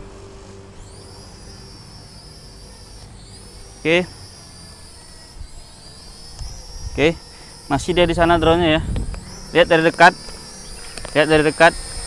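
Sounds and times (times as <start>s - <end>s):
drone propellers whining: 0.0s - 12.0s.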